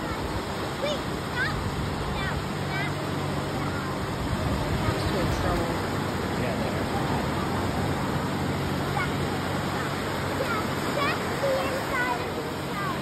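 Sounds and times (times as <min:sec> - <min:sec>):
ocean surf breaking: 0:00.0 - 0:13.0.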